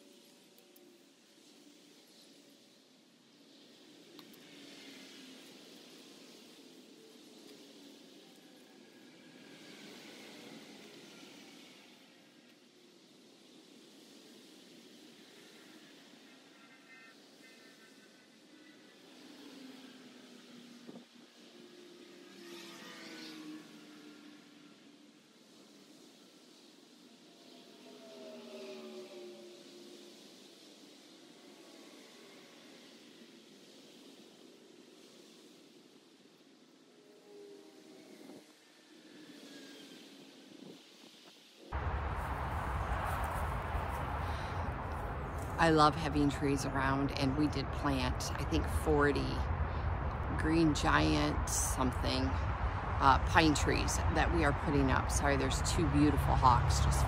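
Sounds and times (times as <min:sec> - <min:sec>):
vehicles passing on highway: 0:13.6 - 0:33.3, 0:36.2 - 0:57.0.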